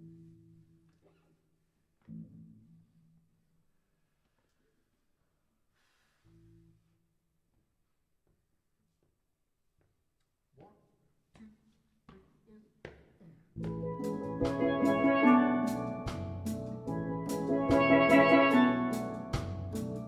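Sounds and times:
steel band playing reggae: 0:13.6 - 0:20.0
cymbal strokes: 0:14.0 - 0:20.0.

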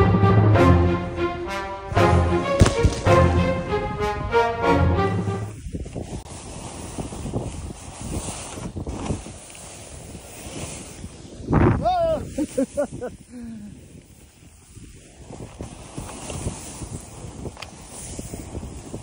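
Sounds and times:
background music: 0:00.0 - 0:05.6
snowboard hissing through powder snow: 0:05.4 - 0:19.0
man exclaiming: 0:11.8 - 0:12.5.

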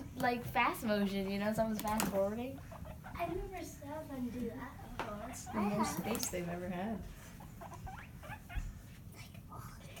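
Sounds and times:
guinea pigs squeaking: 0:00.4 - 0:09.0.

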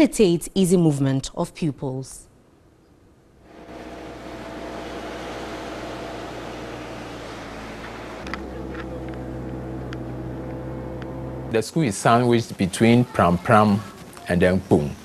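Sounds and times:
low mechanical hum: 0:03.4 - 0:12.8
car engine drone from inside: 0:03.5 - 0:11.6.

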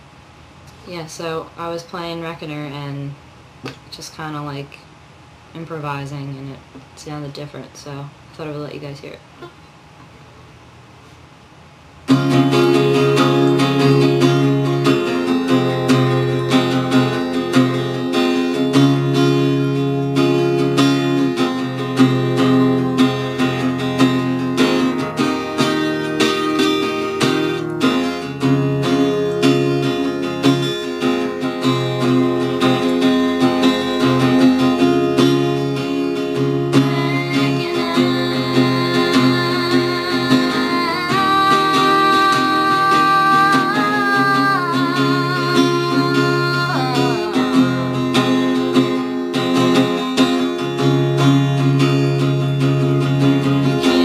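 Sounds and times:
guitar playing sustained notes: 0:12.1 - 0:54.0
woman singing: 0:14.8 - 0:17.6, 0:35.6 - 0:49.2, 0:53.6 - 0:54.0.

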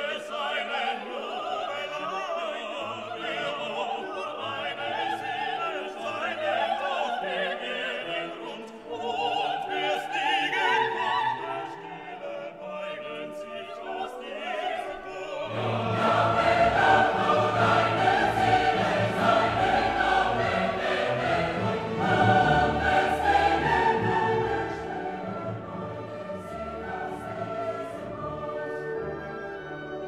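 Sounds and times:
orchestral classical music: 0:00.0 - 0:30.0.

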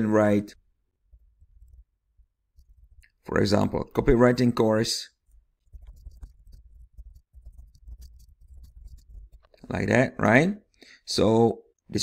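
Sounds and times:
computer keyboard typing: 0:05.6 - 0:09.6.

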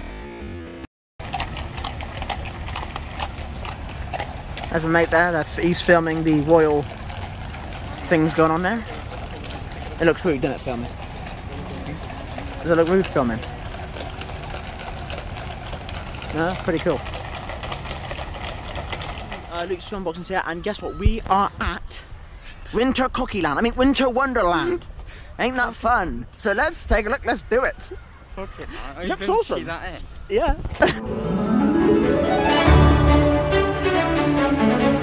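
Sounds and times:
horse hooves on paved road: 0:01.2 - 0:21.5.

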